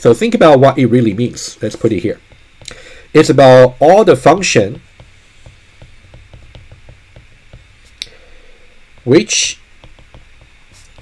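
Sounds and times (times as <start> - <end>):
stylus ticking on tablet screen: 5.0 - 7.7, 9.8 - 11.0.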